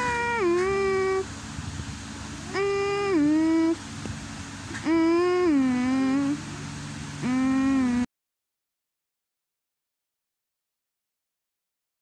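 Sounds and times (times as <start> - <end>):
person humming two-note phrase: 0.0 - 1.3, 2.4 - 3.8, 4.8 - 6.5, 7.2 - 8.1.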